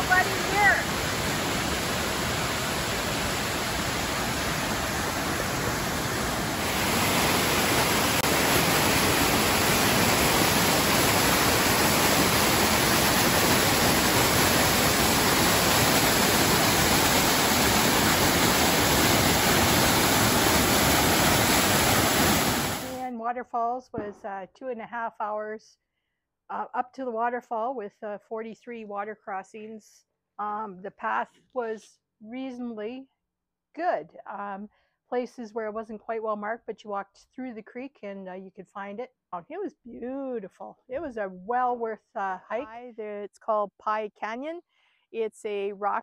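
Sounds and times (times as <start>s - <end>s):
waterfall rushing: 0.0s - 23.1s.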